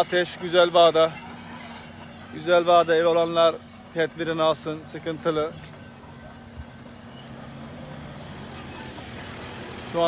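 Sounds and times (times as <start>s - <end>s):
engine humming: 0.0s - 10.0s
outdoor noise: 0.0s - 10.0s.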